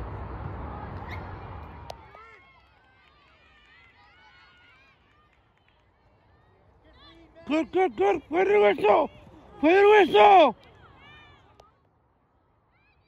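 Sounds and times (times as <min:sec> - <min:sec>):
distant shouts of players: 0:07.1 - 0:11.5.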